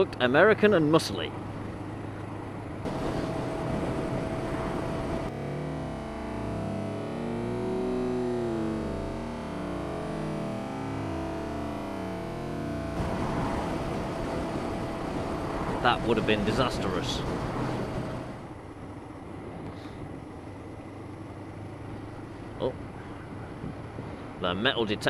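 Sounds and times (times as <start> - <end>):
thin steady whine: 0.0 - 25.0
motorcycle engine: 1.5 - 18.6
wind rushing on microphone: 2.8 - 5.3, 13.0 - 20.3, 21.9 - 25.0.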